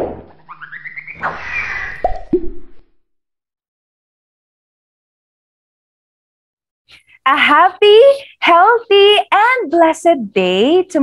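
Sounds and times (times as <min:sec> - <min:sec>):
rising cartoon chirp: 0:00.4 - 0:02.7
cartoon plops: 0:02.0 - 0:02.8.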